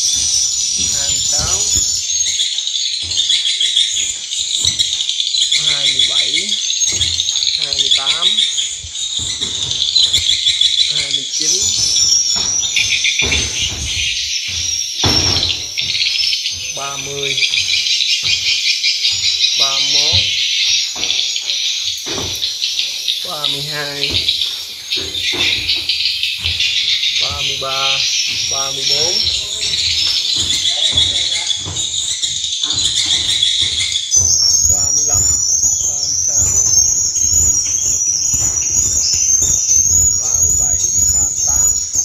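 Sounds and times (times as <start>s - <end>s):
swiftlet chirping: 0.0s - 42.0s.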